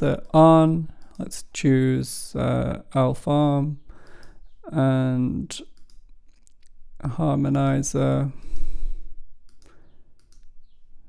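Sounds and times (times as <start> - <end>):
computer mouse clicks: 5.6 - 6.8, 9.4 - 10.8.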